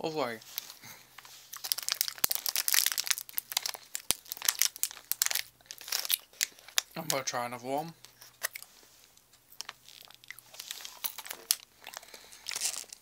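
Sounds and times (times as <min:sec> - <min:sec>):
packaging crinkling: 0:00.5 - 0:07.2, 0:08.0 - 0:13.0.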